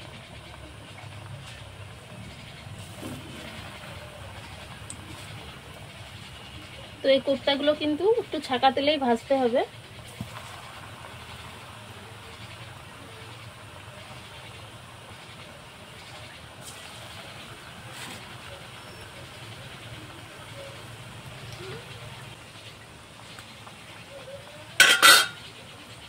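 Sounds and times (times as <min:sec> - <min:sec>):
hot oil sizzling: 0:00.0 - 0:26.0.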